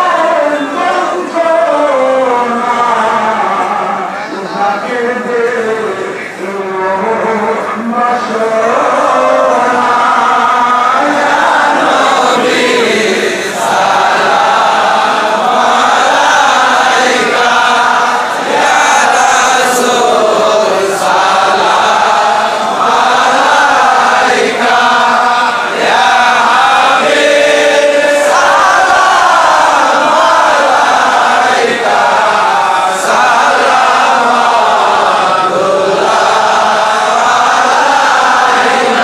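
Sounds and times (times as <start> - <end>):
crowd of men chanting: 0.0 - 39.0.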